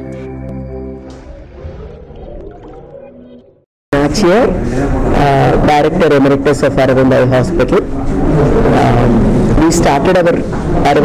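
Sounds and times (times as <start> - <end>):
sustained synth tones: 0.0 - 10.9.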